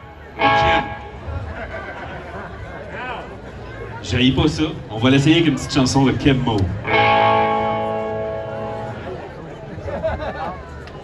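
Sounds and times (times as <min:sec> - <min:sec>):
electric guitar chord ringing: 0:00.0 - 0:01.2, 0:06.8 - 0:09.2.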